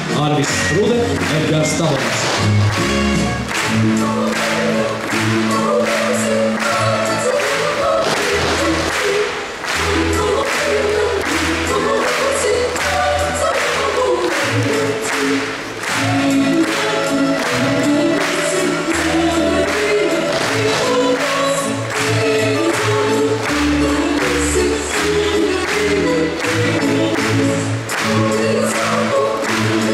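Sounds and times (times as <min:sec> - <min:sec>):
choir singing over dance beat: 0:03.5 - 0:29.9.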